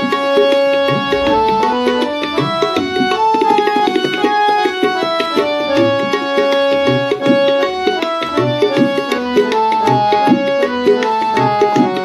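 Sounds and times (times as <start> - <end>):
harmonium melody: 0.0 - 12.0
tabla beat: 0.0 - 12.0.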